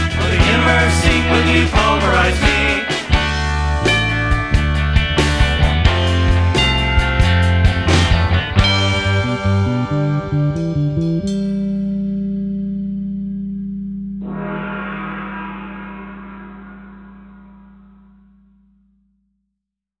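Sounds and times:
rock band held chord: 0.0s - 10.0s, 14.2s - 18.4s.

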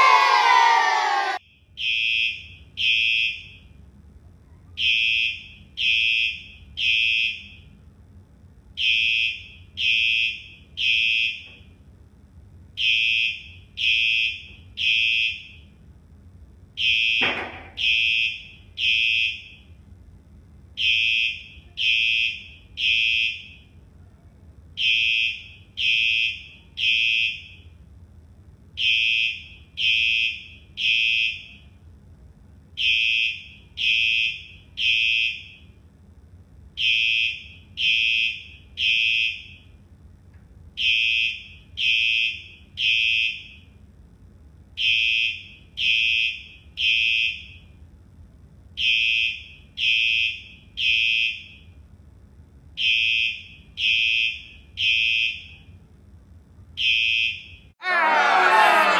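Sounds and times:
fire alarm beeps: 1.4s - 3.8s, 4.8s - 7.8s, 8.8s - 11.7s, 12.8s - 15.8s, 16.8s - 19.8s, 20.8s - 23.8s, 24.8s - 27.8s, 28.8s - 31.8s, 32.8s - 35.8s, 36.8s - 39.8s, 40.8s - 43.8s, 44.8s - 47.8s, 48.8s - 51.8s, 52.8s - 55.8s, 56.8s - 57.8s.

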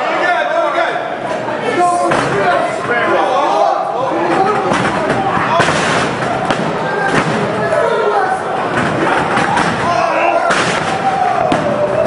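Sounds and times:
voices shouting: 1.6s - 12.0s.

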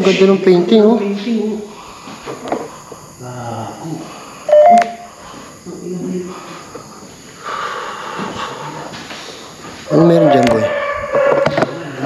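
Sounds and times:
two-tone electronic beep: 4.5s - 5.1s.

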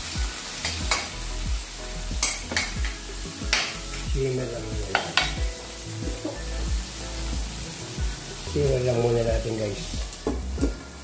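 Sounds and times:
background music: 0.0s - 11.0s
vegetables sizzling in oil: 0.0s - 11.0s
metal tapping on pan: 0.6s - 1.2s, 2.2s - 4.0s, 4.8s - 5.5s.

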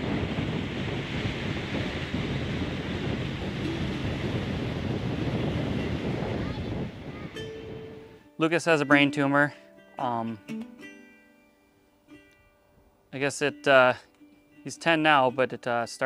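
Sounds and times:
low engine hum: 0.0s - 8.2s
water rushing past hull: 0.0s - 8.2s
wind buffeting microphone: 0.0s - 8.3s.

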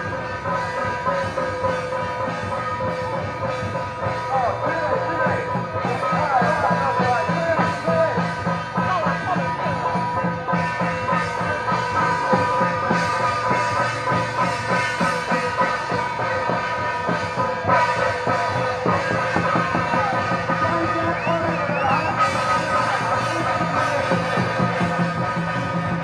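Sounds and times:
drum beat: 0.0s - 26.0s.

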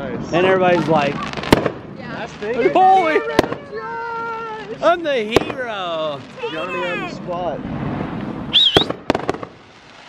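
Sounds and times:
firework cracks: 0.4s - 10.0s
firework whistle: 8.3s - 10.0s.

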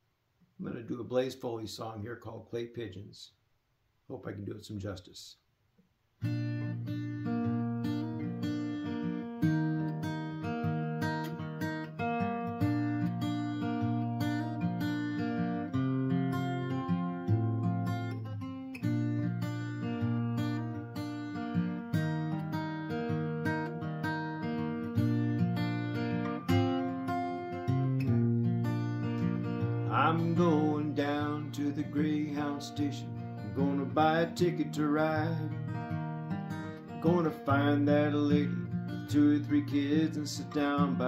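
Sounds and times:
acoustic guitar picking: 6.2s - 41.0s.

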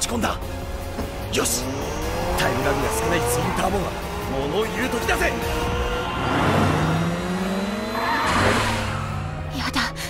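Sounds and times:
sports car engines accelerating: 0.5s - 10.0s.

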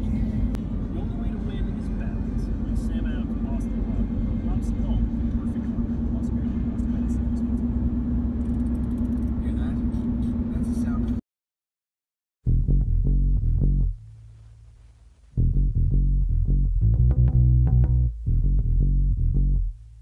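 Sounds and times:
car road and engine rumble: 0.0s - 11.2s.

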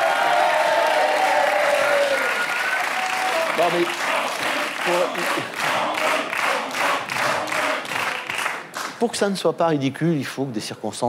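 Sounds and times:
audience applauding: 0.0s - 9.0s.

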